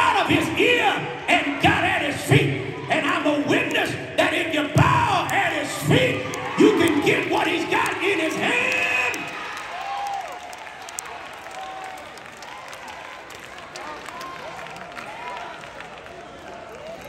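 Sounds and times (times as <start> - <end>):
congregation shouting: 0.0 - 10.3
scattered clapping: 4.8 - 17.0.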